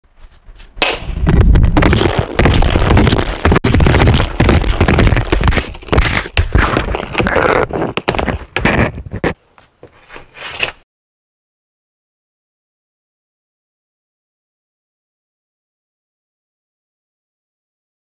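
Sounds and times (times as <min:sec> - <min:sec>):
hockey stick and puck on concrete: 0:00.1 - 0:10.8.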